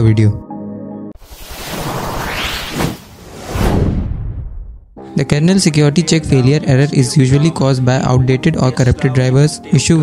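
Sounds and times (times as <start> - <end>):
noisy whoosh: 1.2 - 4.9.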